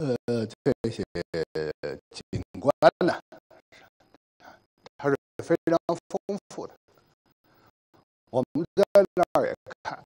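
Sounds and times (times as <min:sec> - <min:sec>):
man speaking: 0:00.0 - 0:03.4, 0:04.9 - 0:06.8, 0:08.4 - 0:10.0.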